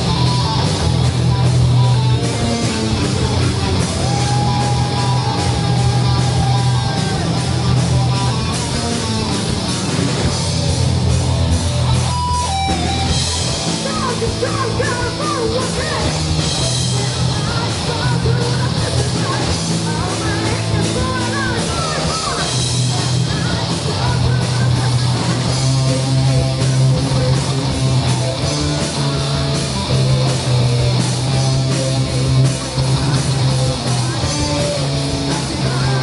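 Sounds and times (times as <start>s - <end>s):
bass line: 0.0s - 36.0s
drums: 0.0s - 36.0s
electric guitar riff: 0.0s - 36.0s
live rock band playing: 0.0s - 36.0s.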